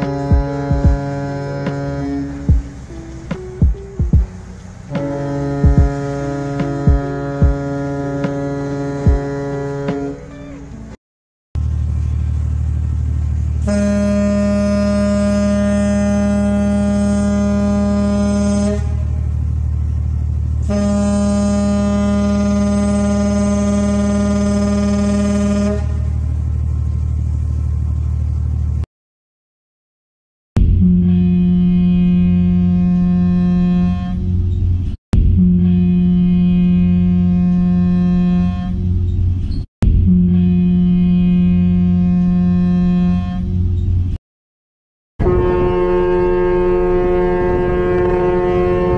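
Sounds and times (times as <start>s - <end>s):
steady low hum: 0.0s - 10.2s
deep ship's horn blasts: 0.0s - 11.0s, 13.2s - 26.7s, 30.6s - 39.4s, 40.0s - 43.8s, 45.2s - 48.9s
low rumble: 0.0s - 11.0s.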